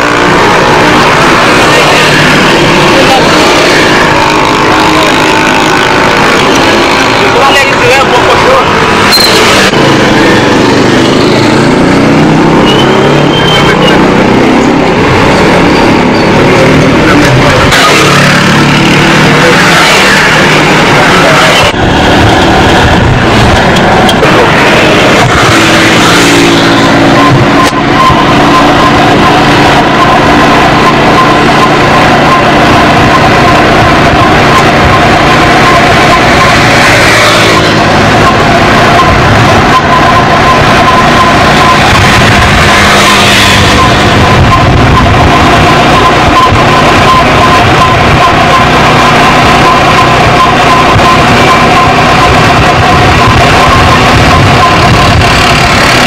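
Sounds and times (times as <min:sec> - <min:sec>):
people's voices: 0:00.0 - 0:11.9, 0:12.5 - 0:21.8, 0:22.9 - 0:56.0
motorcycle engines passing: 0:00.0 - 0:56.0.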